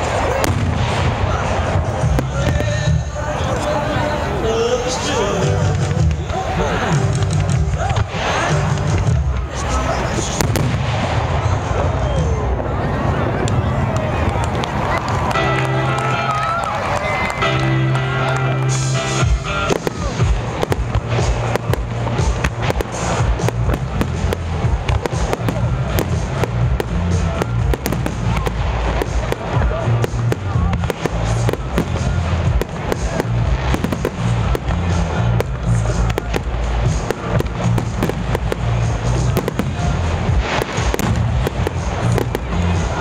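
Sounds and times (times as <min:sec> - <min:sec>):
loud music: 0:00.0 - 0:13.4, 0:14.8 - 0:43.0
fireworks bangs: 0:00.0 - 0:43.0.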